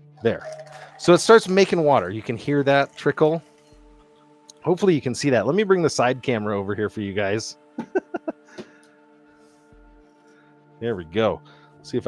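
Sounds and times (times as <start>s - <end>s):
faint background music: 0.0s - 12.0s
man laughing: 7.8s - 8.7s.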